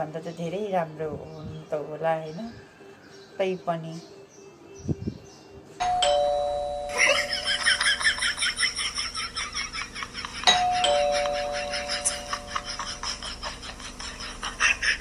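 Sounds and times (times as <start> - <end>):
two-tone doorbell chime: 5.8 - 8.6, 10.4 - 13.1.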